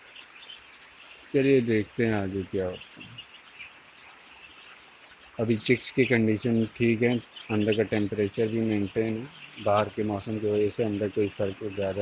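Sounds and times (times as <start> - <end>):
chicks peeping: 1.3 - 12.0.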